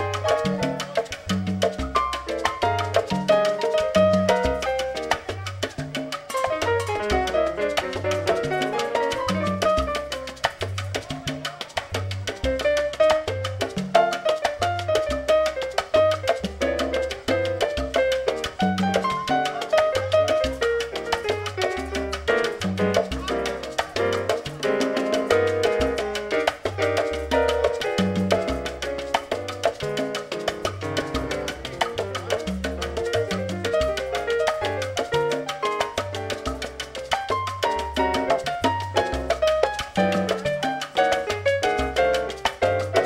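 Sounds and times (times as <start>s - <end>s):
percussion: 0.0s - 43.0s
piano: 0.0s - 43.0s
upright double bass: 0.0s - 43.0s.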